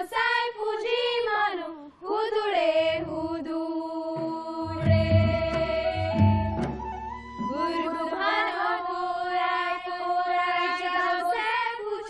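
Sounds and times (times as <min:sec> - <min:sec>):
women singing folk song: 0:00.0 - 0:12.0
low drum beats: 0:04.2 - 0:08.2.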